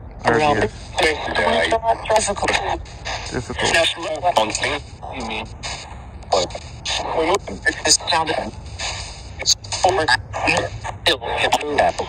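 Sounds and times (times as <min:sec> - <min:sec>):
radio static hiss: 0:00.1 - 0:12.0
radio voice fragments: 0:00.2 - 0:12.0.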